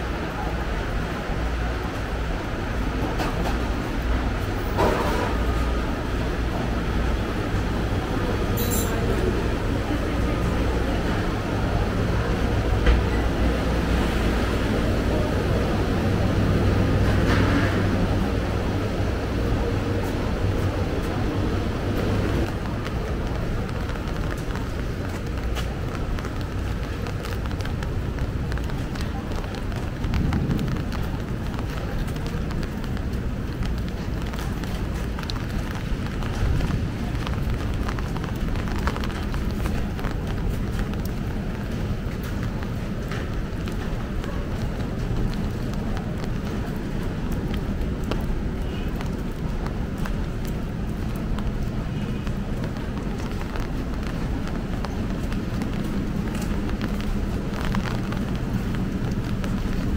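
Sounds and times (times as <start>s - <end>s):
distant traffic hum: 0.0s - 59.9s
voices: 0.0s - 59.9s
faint footsteps: 19.9s - 59.9s.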